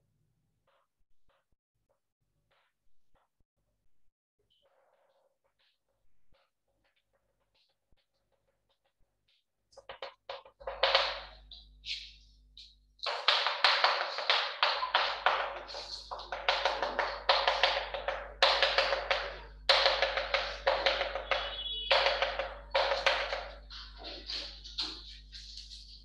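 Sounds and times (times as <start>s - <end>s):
chalk tapping and scratching on chalkboard: 5.6s - 26.0s.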